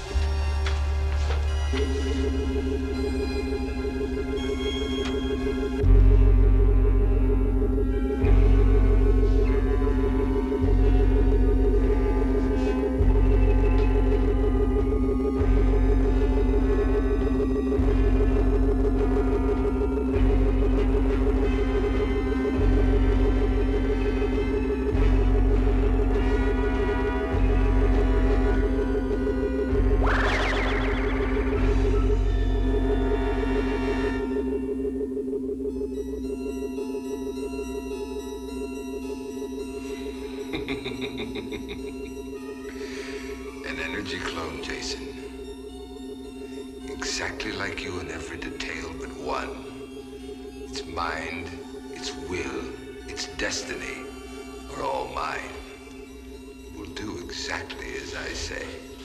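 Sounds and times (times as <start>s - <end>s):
deep throb: 0.0s - 59.0s
electronic drone: 0.0s - 59.0s
rapid high beeps: 1.5s - 59.0s.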